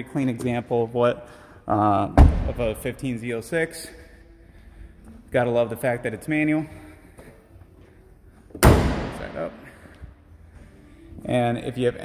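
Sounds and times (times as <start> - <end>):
car hood slamming shut: 2.2 - 2.8, 8.6 - 9.2.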